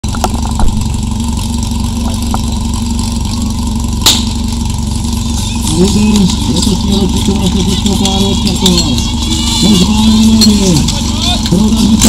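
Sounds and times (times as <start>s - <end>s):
pump engine idling: 0.0s - 12.0s
sharp crack: 4.0s - 4.6s
people shouting: 8.1s - 12.0s.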